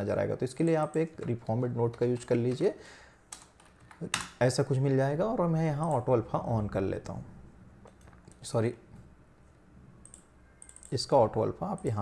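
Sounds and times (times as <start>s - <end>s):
computer mouse clicks: 10.0s - 11.0s.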